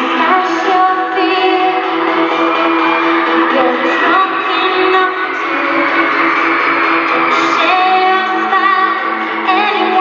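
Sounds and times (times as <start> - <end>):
live pop band with guitar: 0.0 - 10.0.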